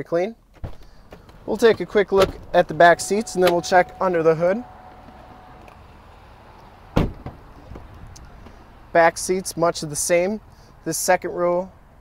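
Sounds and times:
faint steady background noise: 0.0 - 12.0
car door shutting: 0.5 - 8.6.

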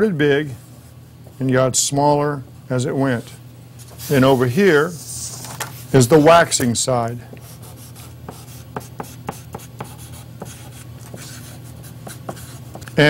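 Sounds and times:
chalk scratching on paper: 7.4 - 12.8
chalk tapping on paper: 7.4 - 12.9.

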